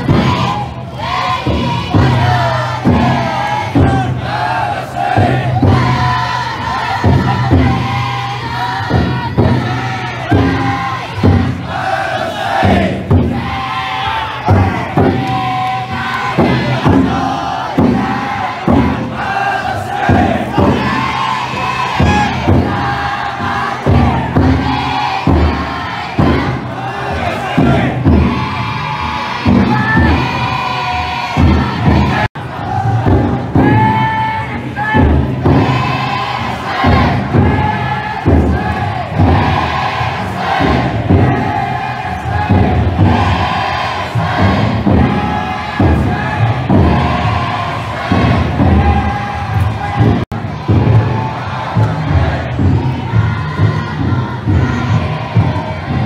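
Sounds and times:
big drum beating: 0.0 - 56.0
people chanting and shouting: 0.0 - 56.0.

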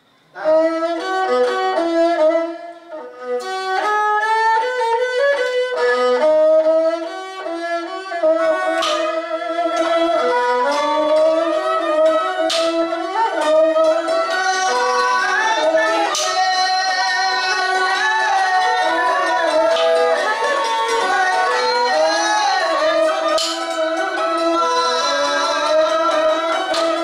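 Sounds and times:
bowed fiddle melody: 0.3 - 27.0
hammered dulcimer: 12.3 - 27.0.

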